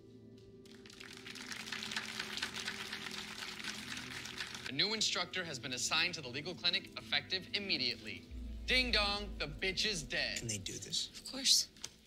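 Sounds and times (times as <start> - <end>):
soft background music: 0.0 - 12.0
small group clapping: 0.6 - 4.7.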